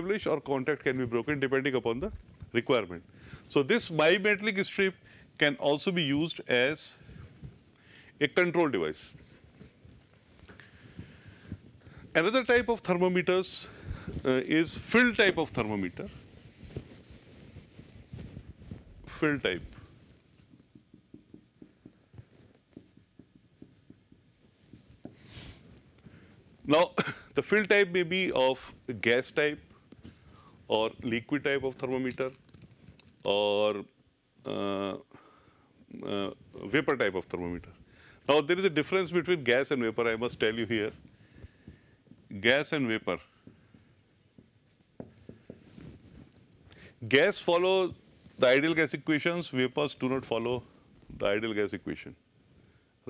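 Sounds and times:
marker writing on whiteboard: 10.6 - 26.3, 38.3 - 46.5.

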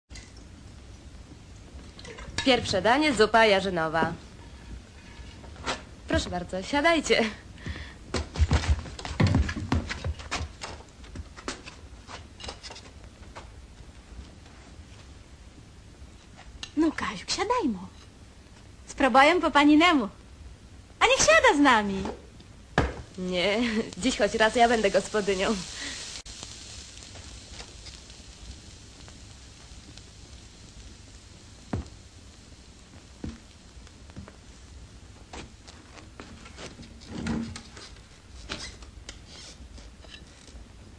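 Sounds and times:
steady hiss: 0.1 - 40.9.

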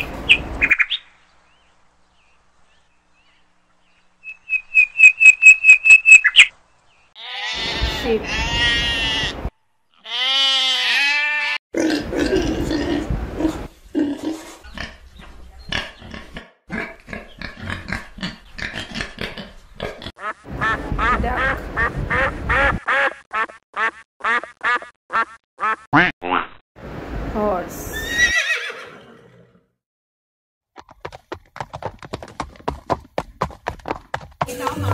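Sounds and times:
piglets grunting and squealing: 7.2 - 9.4, 10.0 - 15.0
sheep bleating: 7.2 - 9.4, 10.0 - 11.6
horse whinnying: 28.0 - 29.6.

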